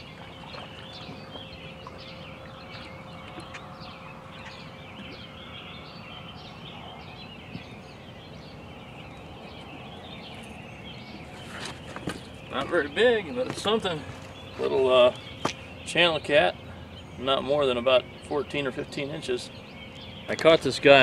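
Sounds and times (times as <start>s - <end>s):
birds chirping: 0.0s - 21.0s.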